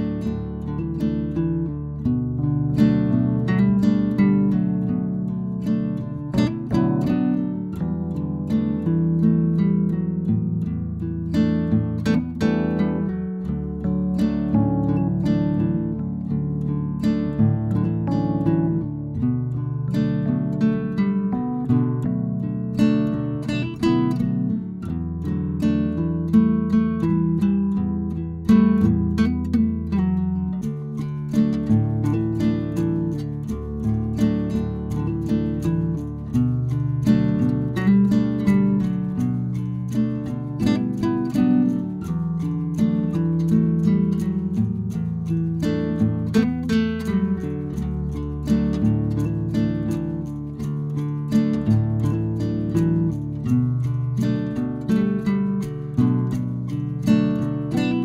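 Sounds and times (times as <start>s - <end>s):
acoustic guitar plucked and strummed: 0.0s - 58.0s.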